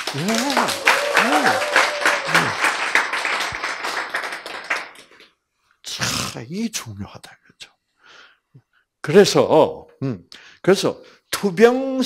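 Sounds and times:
audience applauding: 0.0s - 5.2s.

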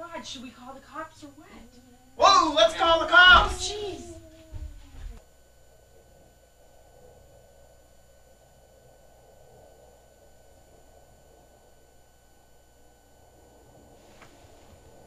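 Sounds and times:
tape hum and hiss: 0.0s - 15.0s.

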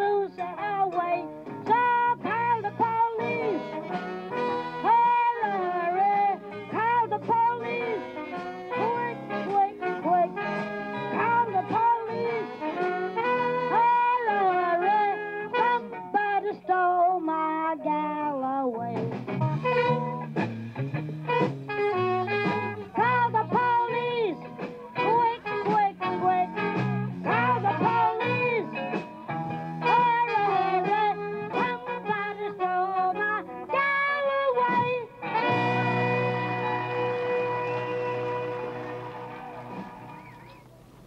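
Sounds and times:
saxophone: 0.0s - 17.1s, 19.0s - 41.0s
blues band playing: 0.0s - 41.0s
trumpet melody: 1.7s - 16.5s, 19.4s - 20.4s, 21.2s - 41.0s.

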